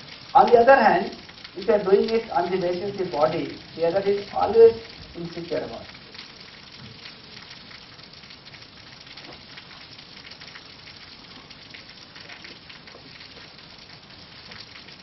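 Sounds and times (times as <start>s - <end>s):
recording hiss: 0.0s - 15.0s.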